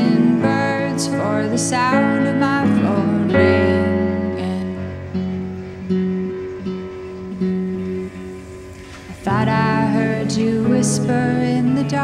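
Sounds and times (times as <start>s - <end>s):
acoustic guitar: 0.0s - 12.0s
electric keyboard: 0.0s - 12.0s.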